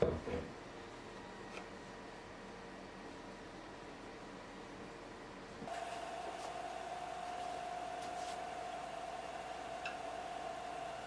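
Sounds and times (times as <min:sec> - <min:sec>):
wood lathe motor whining: 0:05.7 - 0:11.0.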